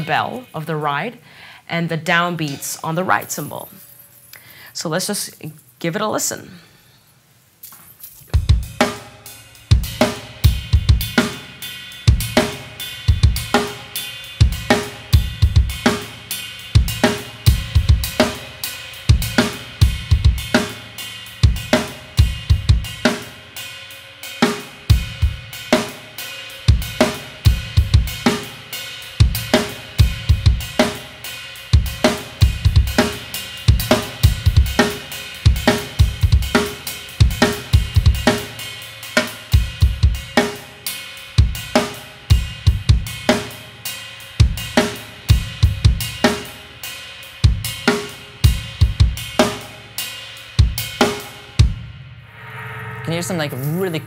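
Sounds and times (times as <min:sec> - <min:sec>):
ride cymbal ringing: 0:52.3 - 0:54.0.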